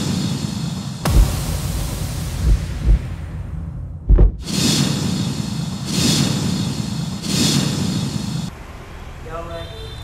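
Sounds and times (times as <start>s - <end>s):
rushing rumbling swells: 1.0s - 8.5s.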